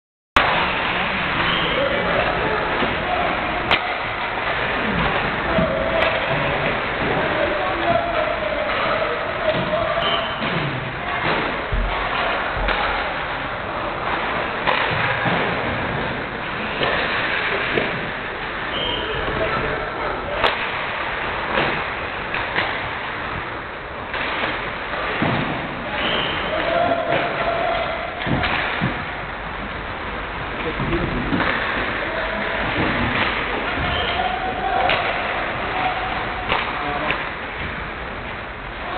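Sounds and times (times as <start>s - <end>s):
pucks hitting sticks and boards: 0.4s - 38.9s.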